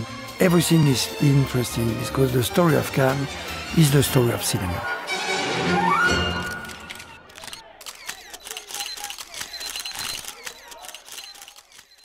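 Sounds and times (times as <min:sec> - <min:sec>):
camera shutters clicking rapidly: 0:06.4 - 0:12.0.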